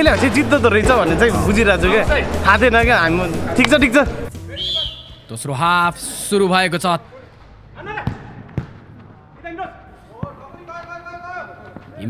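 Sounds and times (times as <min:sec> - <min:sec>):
ball kicked on artificial turf: 0:08.0 - 0:09.1.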